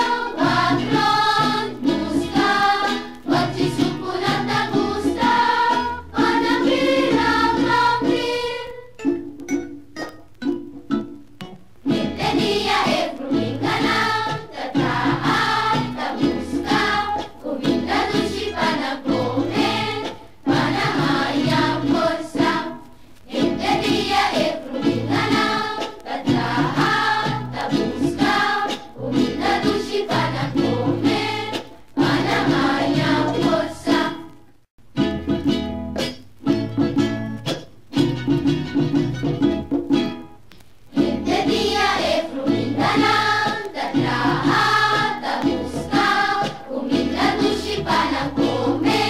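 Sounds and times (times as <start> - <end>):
song with group singing: 0.0 - 9.2, 11.9 - 34.4, 40.9 - 49.0.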